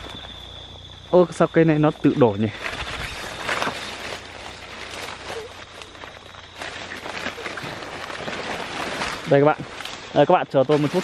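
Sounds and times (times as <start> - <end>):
dry leaves rustling underfoot: 0.0 - 11.0.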